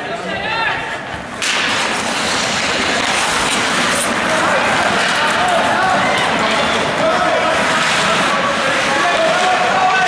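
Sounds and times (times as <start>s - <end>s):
skates and sticks scraping ice: 0.5s - 10.0s
people shouting: 3.7s - 10.0s.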